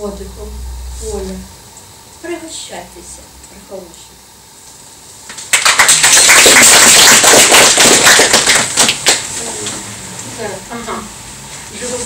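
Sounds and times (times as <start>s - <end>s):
audience applauding: 5.5s - 9.3s.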